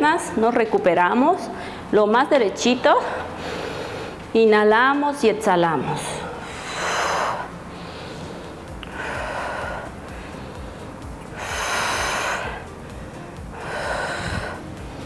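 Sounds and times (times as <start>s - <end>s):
woman breathing deeply: 1.6s - 1.9s, 3.0s - 4.3s, 5.9s - 15.0s.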